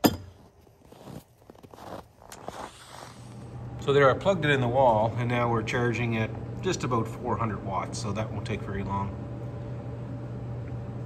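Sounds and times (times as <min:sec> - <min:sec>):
power station humming: 0:02.4 - 0:11.0.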